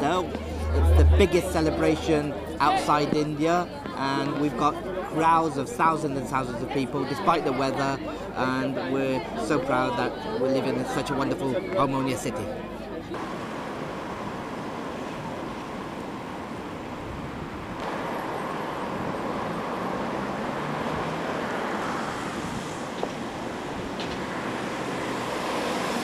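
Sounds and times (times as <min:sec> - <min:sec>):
cars passing on road: 0:00.0 - 0:02.8, 0:13.1 - 0:26.0.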